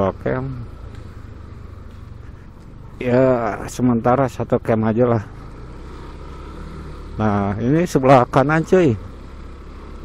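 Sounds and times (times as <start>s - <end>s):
road noise: 0.0s - 10.0s
scooter engine drone: 0.0s - 10.0s.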